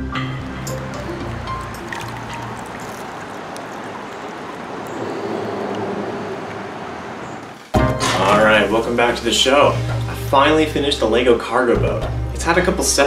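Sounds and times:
background music: 0.0s - 3.1s, 7.8s - 13.0s
creek water flowing: 0.0s - 11.7s.

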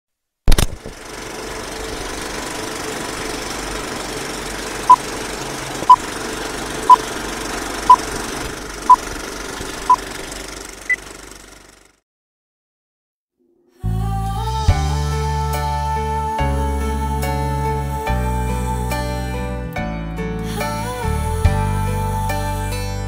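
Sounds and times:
sharp click: 0.5s - 0.9s.

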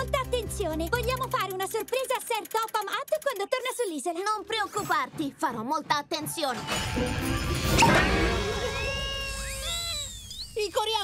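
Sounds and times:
gliding whistling tones: 7.8s - 10.8s.

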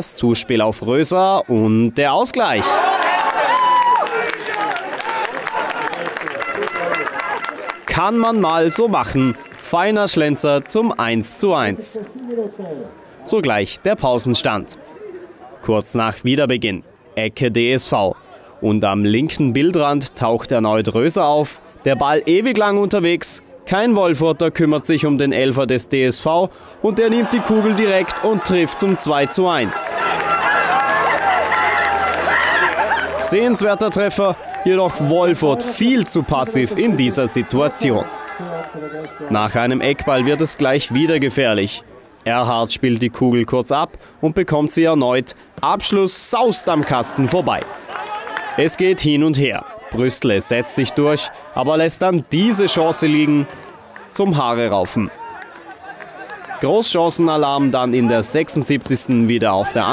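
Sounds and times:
crowd shouting: 2.4s - 10.4s, 26.8s - 42.1s, 45.8s - 59.9s
crowd clapping: 2.7s - 12.9s, 26.9s - 41.2s, 46.6s - 49.4s, 52.3s - 59.9s.

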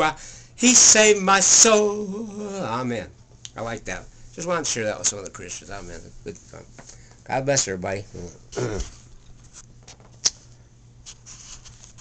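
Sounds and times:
man clearing his throat: 8.5s - 9.0s.

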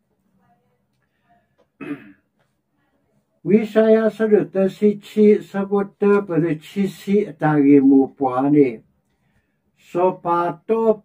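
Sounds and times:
man clearing his throat: 1.8s - 2.3s.

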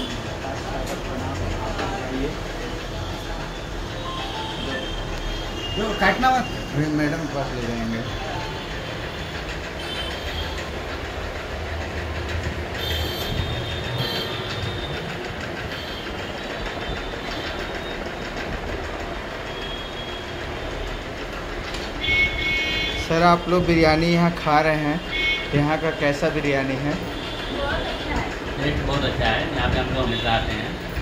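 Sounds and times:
restaurant room noise: 0.0s - 31.0s.

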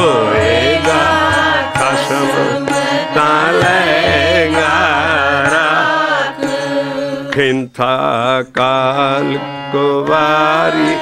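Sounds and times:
steady held drone: 0.0s - 7.4s
man singing: 0.0s - 11.0s.

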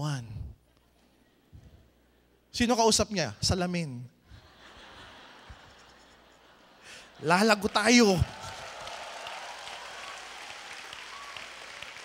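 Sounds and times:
audience applause: 7.2s - 12.0s.

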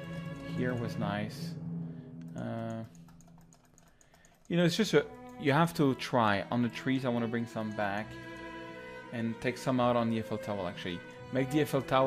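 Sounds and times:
computer keys clicking: 2.2s - 5.5s.

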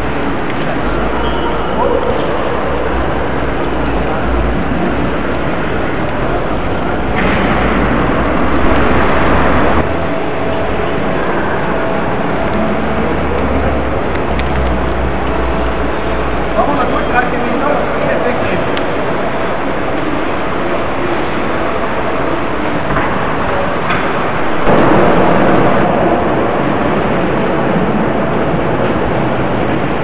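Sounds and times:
loud rushing noise: 0.0s - 20.6s, 21.5s - 30.0s
low rumble: 3.3s - 15.8s, 24.4s - 30.0s.

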